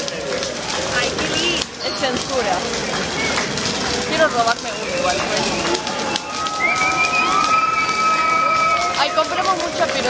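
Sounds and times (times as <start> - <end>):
fire crackling and popping: 0.0 - 10.0.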